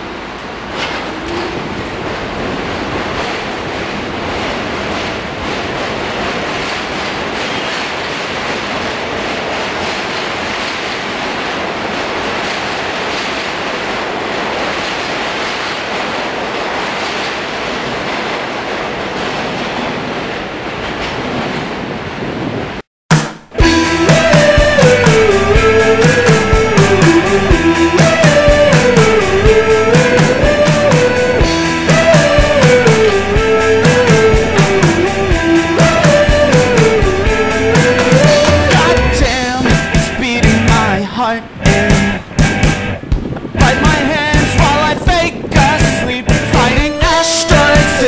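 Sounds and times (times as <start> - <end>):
subway train rumble and rail noise: 0.0 - 22.9, 23.6 - 48.0.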